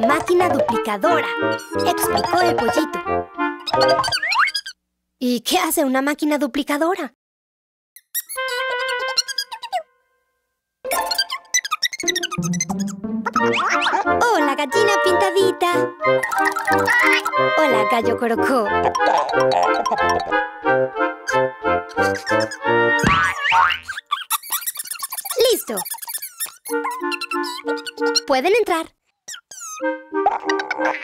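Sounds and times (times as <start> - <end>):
bouncy cartoon music: 0.0 - 4.7, 8.2 - 10.0, 10.9 - 28.8, 29.4 - 31.0
wobbling cartoon sound effect: 10.9 - 14.2, 16.1 - 17.5
squeaky slide: 23.9 - 28.2.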